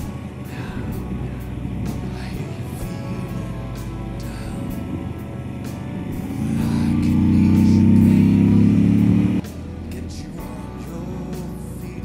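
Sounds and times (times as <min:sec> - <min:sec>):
music with steady beat: 0:00.0 - 0:12.0
motorcycle engine under throttle: 0:04.2 - 0:09.4.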